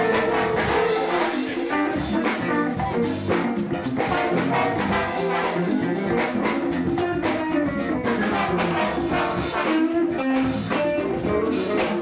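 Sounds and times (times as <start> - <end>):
archtop guitar: 0.0 - 12.0
drum kit: 0.0 - 12.0
brass section: 4.0 - 6.4, 8.0 - 11.9.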